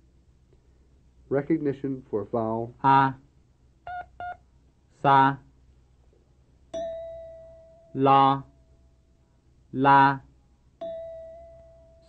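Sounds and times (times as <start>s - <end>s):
short electronic beeps: 3.9s - 4.4s.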